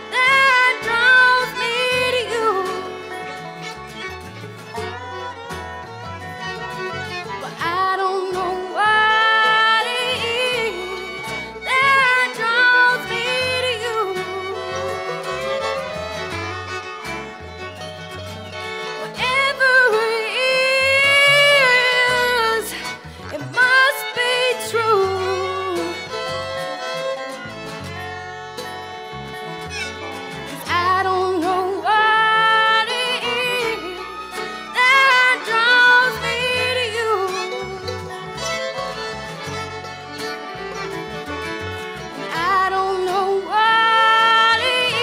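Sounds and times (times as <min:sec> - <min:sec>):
woman singing: 0:00.0 - 0:03.6, 0:07.4 - 0:16.2, 0:19.0 - 0:27.1, 0:30.5 - 0:38.2, 0:42.1 - 0:45.0
string band melody: 0:00.0 - 0:45.0
upright bass notes: 0:00.0 - 0:45.0.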